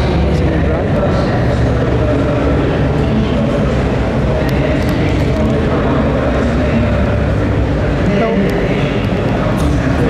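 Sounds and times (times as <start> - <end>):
murmur of many voices: 0.0 - 10.0.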